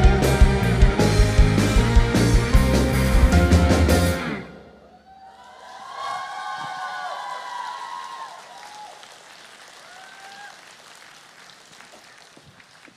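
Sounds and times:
audience applauding and cheering: 4.9 - 12.9.

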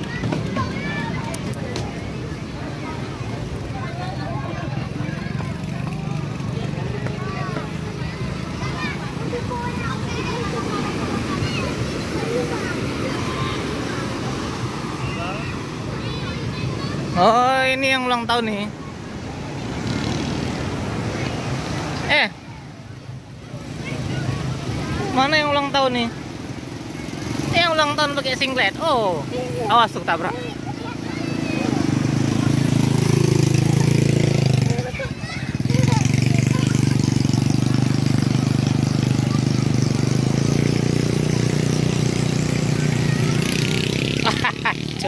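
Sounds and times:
breaking surf: 0.0 - 45.0
motor engine droning: 30.2 - 45.0.

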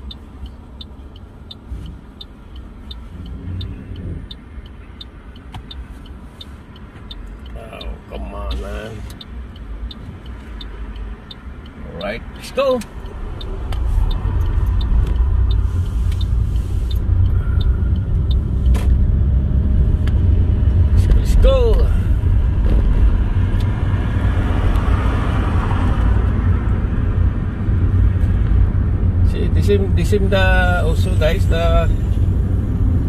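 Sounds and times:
car engine and road noise: 0.0 - 33.0.

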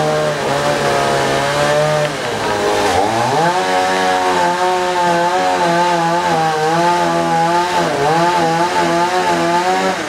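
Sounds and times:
small engine running: 0.0 - 10.0.

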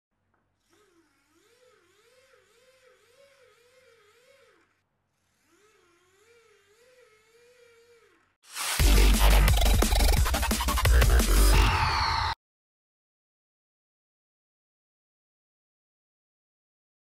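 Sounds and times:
faint whine of gears turning: 0.3 - 8.4.

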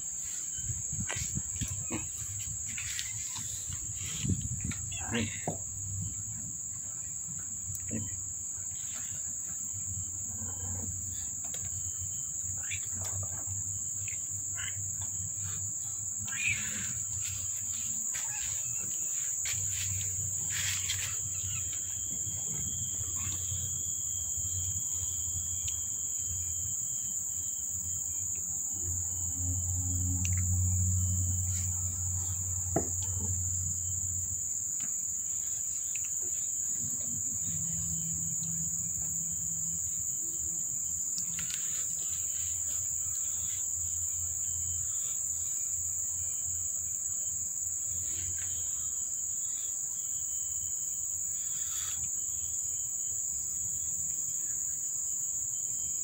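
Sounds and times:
insects chirring: 0.0 - 56.0.

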